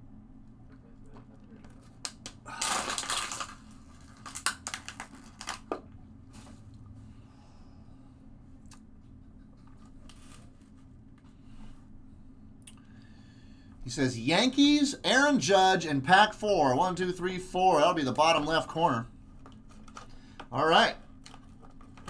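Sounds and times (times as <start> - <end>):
plastic clicks and crackles: 1.1 - 5.9
plastic bottle crinkling: 2.5 - 5.8.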